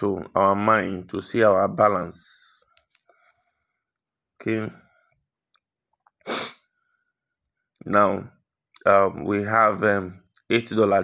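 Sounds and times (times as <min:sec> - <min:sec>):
short burst of breath: 0:06.2 - 0:06.9.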